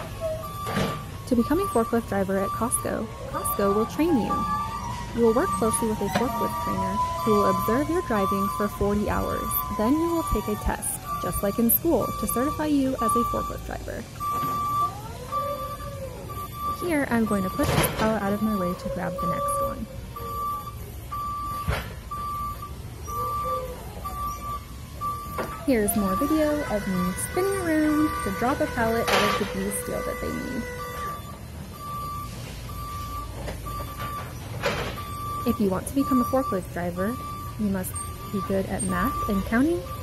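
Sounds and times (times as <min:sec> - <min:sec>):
forklift warning beeps: 0:00.0 - 0:40.0.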